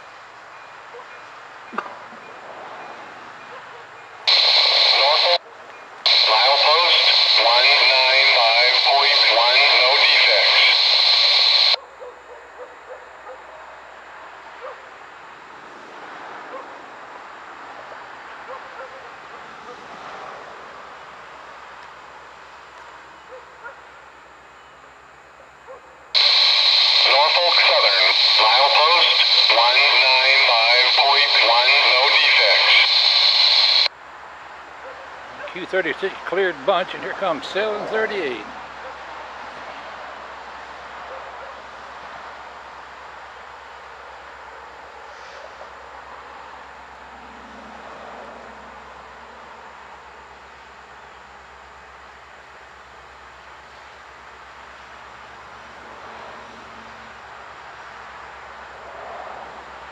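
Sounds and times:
radio squelch burst: 4.3 - 5.4, 6.1 - 11.8, 26.2 - 33.9
radio voice through scanner speaker: 4.3 - 11.8, 26.2 - 33.9, 35.4 - 38.6.

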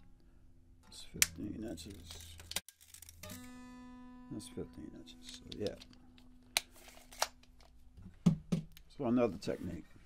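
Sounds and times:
acoustic guitar note ringing: 3.2 - 6.4.

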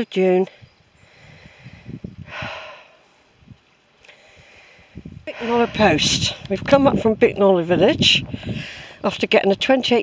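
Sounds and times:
breath exhale: 1.0 - 3.2, 4.0 - 6.0, 8.3 - 9.0.

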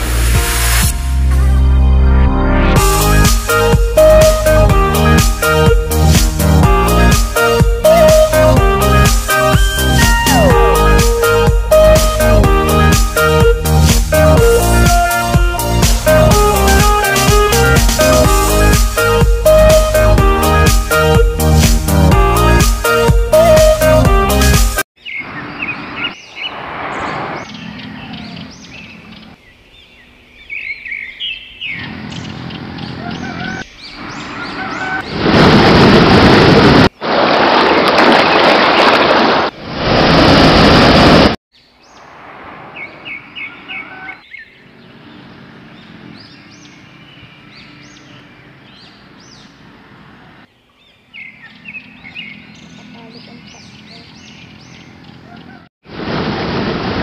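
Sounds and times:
birds chirping: 25.0 - 35.3, 41.5 - 55.7
waterfall rushing into pool: 35.1 - 41.4, 55.9 - 57.0.

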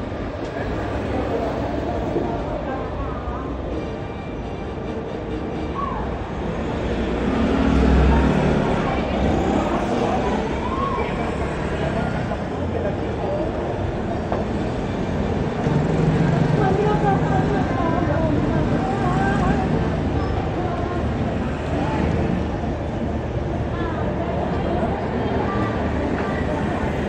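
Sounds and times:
vehicles and scooters passing: 5.4 - 27.0.

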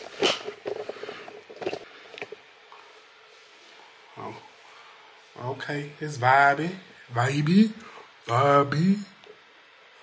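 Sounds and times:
camera handling rustles and knocks: 0.0 - 2.4.

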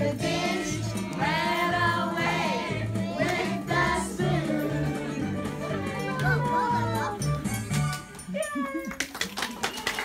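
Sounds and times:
clapping: 8.8 - 10.0.

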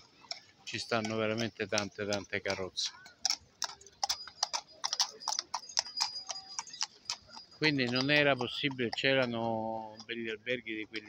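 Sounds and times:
hooves clip-clopping on stone: 0.0 - 11.0.

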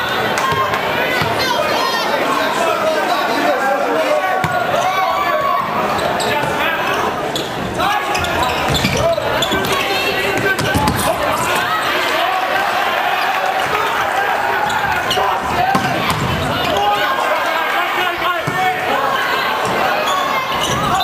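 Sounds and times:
people shouting and chatting: 0.0 - 21.0.

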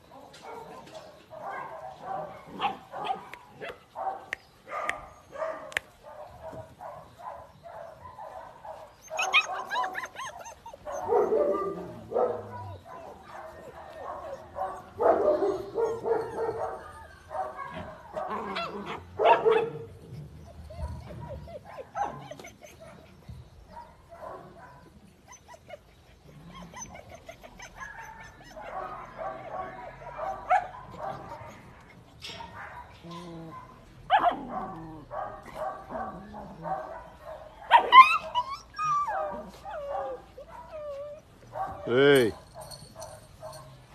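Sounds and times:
puppies yipping and barking: 0.0 - 43.9.

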